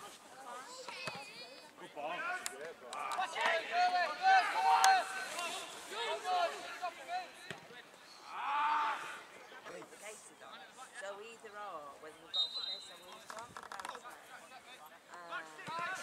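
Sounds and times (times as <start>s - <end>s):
players shouting: 2.2s - 7.4s.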